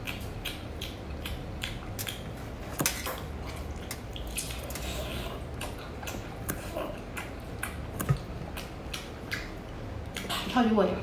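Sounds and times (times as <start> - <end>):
wet chewing mouth sounds: 0.0 - 10.6.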